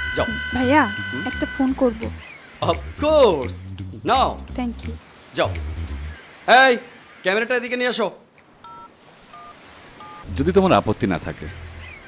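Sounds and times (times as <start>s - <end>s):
phone keypad tones: 8.6s - 10.2s.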